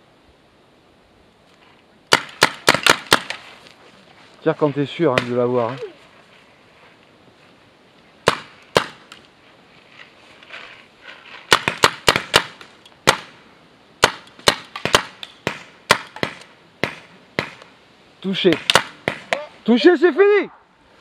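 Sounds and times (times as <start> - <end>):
paintball markers firing: 2.1 - 3.4, 11.5 - 13.3.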